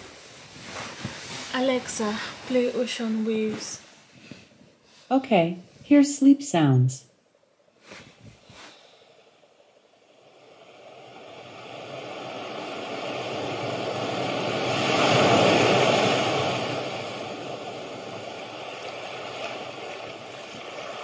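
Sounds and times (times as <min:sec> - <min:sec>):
ocean surf rushing: 0:00.0 - 0:03.8, 0:10.0 - 0:21.0.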